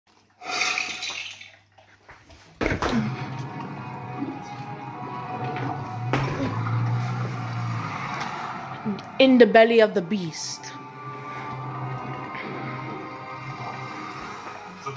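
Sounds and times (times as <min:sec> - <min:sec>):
music: 0:02.6 - 0:14.9
low steady drone: 0:02.8 - 0:14.9.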